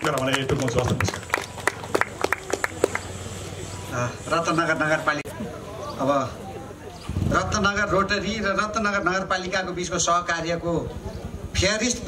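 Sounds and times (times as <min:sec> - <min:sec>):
scattered hand claps: 0:00.0 - 0:03.2.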